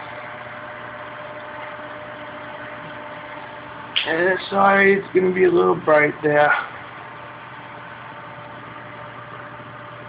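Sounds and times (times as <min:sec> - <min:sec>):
aquarium equipment hum and hiss: 0:00.0 - 0:10.0.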